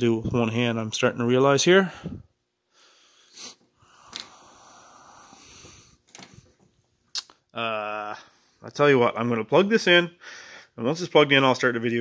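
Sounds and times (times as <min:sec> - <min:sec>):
faint steady hiss: 0:00.0 - 0:12.0
wire handling sounds: 0:06.0 - 0:07.4.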